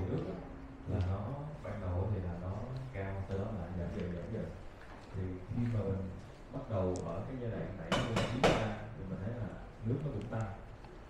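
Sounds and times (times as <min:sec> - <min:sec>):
man speaking through a microphone: 0:00.0 - 0:10.8
sharp knocks: 0:07.9 - 0:08.8.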